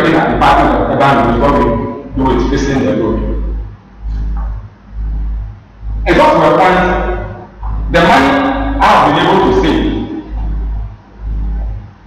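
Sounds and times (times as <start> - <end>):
deep low rumble: 9.5 - 12.0.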